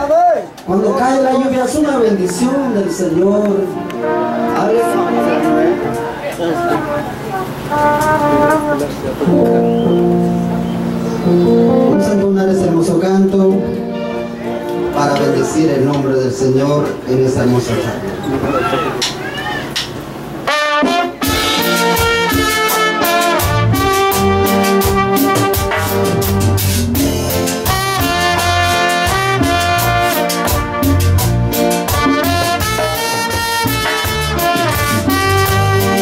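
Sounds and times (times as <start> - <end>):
live band music: 0.0 - 36.0
held brass note: 3.6 - 12.1, 20.4 - 36.0
trumpet melody: 3.6 - 15.9, 20.4 - 36.0.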